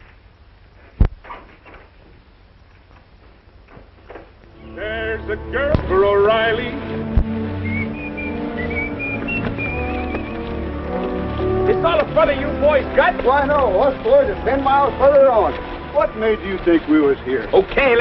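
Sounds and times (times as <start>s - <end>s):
faint clicks: 0.0s - 4.6s
film soundtrack music: 4.4s - 18.0s
voices: 4.5s - 18.0s.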